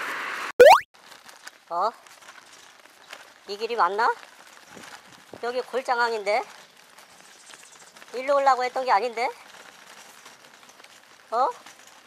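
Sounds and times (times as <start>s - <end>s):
cartoon boing sound effect: 0.6s - 0.8s.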